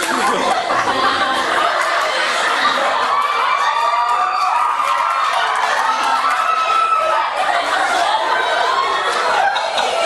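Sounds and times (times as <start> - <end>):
children cheering and shouting: 0.0 - 10.0.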